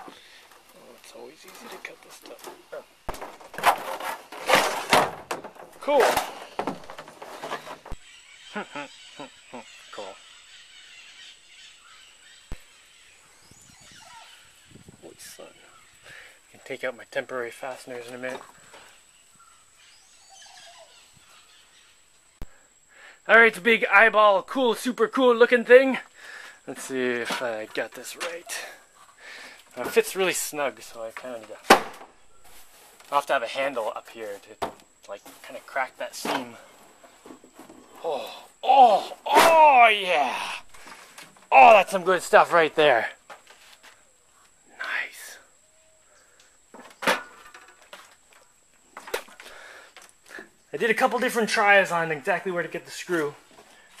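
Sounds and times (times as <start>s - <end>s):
rustles: 0.0s - 54.0s
faint bird chirps: 8.0s - 16.7s, 18.3s - 23.2s, 43.8s - 47.5s.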